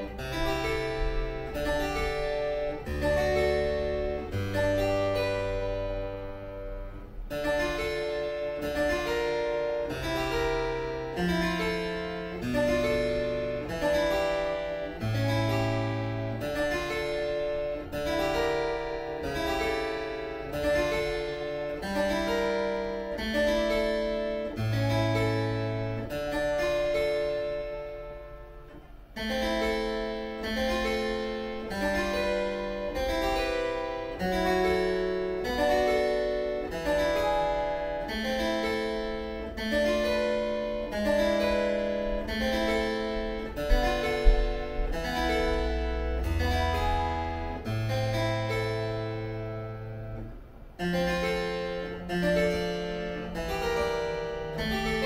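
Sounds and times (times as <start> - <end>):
harpsichord chords: 0.0 - 55.0
low knocks: 43.6 - 45.7.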